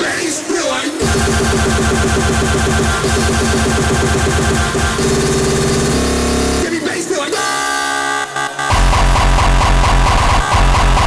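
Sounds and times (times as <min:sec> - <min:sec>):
hardcore electronic music: 0:00.0 - 0:11.0.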